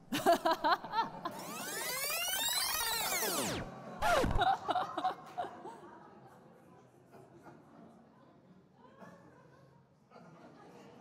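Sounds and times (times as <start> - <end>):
synthesized swooping sound effect: 1.3 - 4.4.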